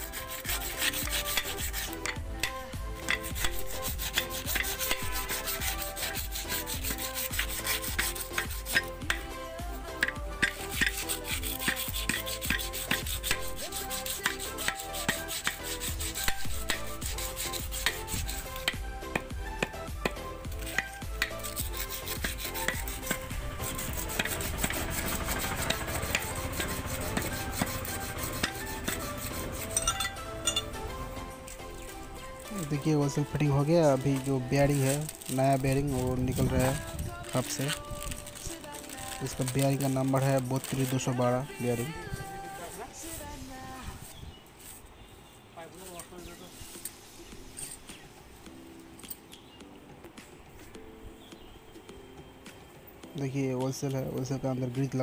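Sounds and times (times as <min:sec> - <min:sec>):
background music: 0:00.0 - 0:44.8, 0:45.8 - 0:55.0
hammer tapping on metal: 0:08.0 - 0:09.3, 0:29.7 - 0:30.8.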